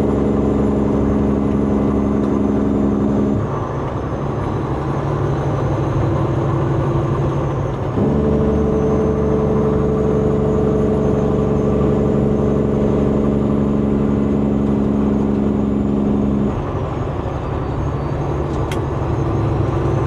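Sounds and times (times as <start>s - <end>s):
truck engine running: 0.0s - 20.0s.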